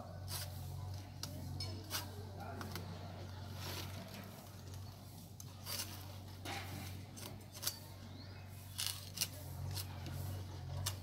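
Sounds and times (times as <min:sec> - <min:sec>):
knife cutting and scraping wood: 0:00.0 - 0:11.0.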